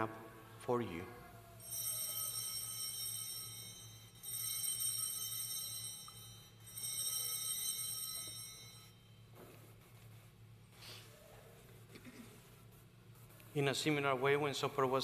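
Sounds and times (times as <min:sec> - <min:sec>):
altar bells ringing: 0:01.6 - 0:09.3.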